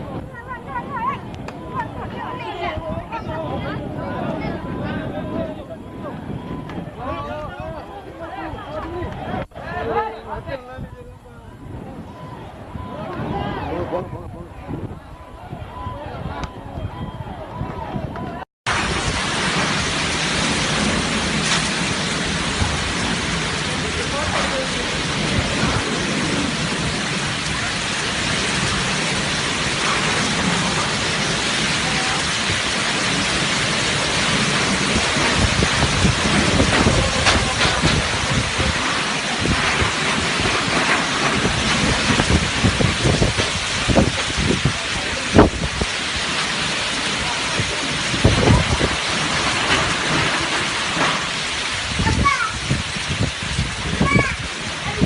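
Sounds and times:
heavy rain: 0.0 - 55.0.

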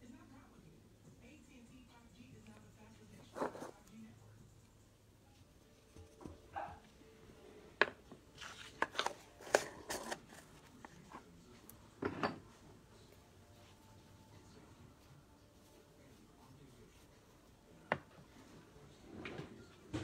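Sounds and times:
bottles and tools clicking on table: 12.0 - 12.4.

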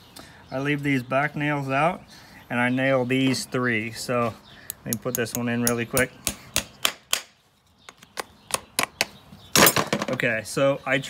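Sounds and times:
hammer tapping horseshoe nail: 4.7 - 7.3.

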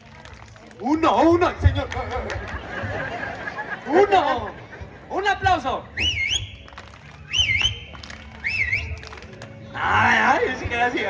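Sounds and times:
shrill swooping whistle: 6.0 - 6.6, 7.3 - 7.8.

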